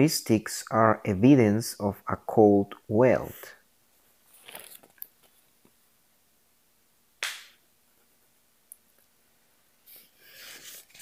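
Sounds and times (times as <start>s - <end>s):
soft handling rustle: 4.0s - 5.8s.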